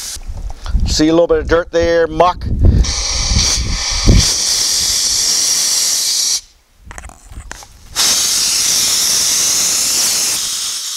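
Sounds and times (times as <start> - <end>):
steam and water hissing: 0.0 - 0.2, 2.8 - 6.5, 7.9 - 10.9.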